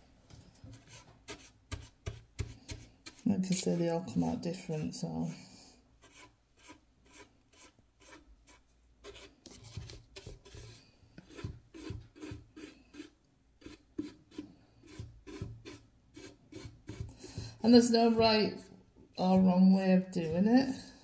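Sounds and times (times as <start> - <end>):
paintbrush scrubbing on wood: 0.7 - 17.1.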